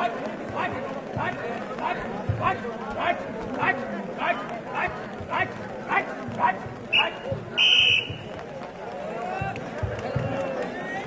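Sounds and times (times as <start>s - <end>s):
short whistle chirp: 6.9s - 8.2s
referee's whistle blast: 6.9s - 8.3s.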